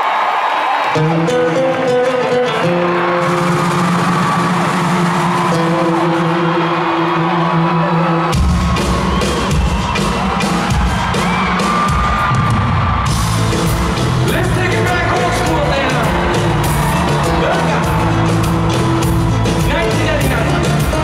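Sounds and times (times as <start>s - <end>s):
crowd cheering: 0.0s - 21.0s
pop band over loudspeakers: 0.1s - 21.0s.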